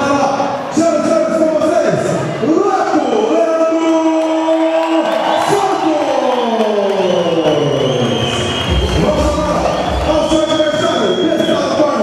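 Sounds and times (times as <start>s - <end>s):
crowd cheering: 2.2s - 12.0s
music over loudspeakers: 8.2s - 12.0s
deep bass: 8.6s - 10.6s.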